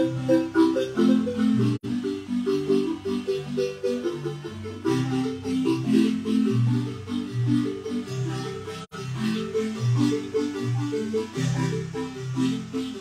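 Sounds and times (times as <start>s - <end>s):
marimba played with mallets: 0.0s - 8.9s.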